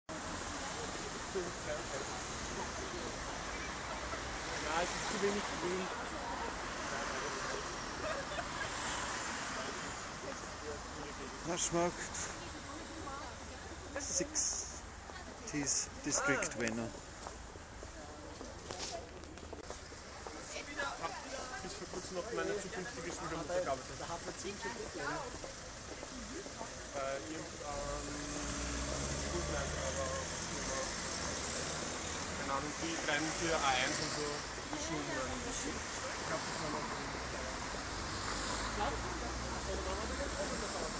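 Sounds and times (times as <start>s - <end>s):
street traffic: 0.1s - 40.9s.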